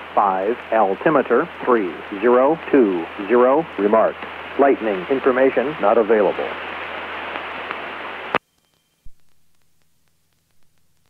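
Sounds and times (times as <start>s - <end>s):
radio hiss: 0.0s - 11.0s.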